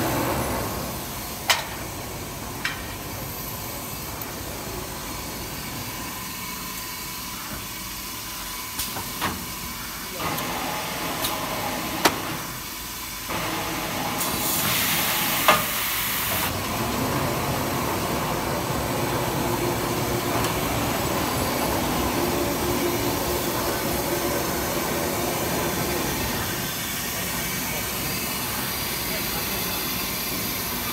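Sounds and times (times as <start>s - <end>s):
paper rewinding machine running: 16.5s - 26.6s.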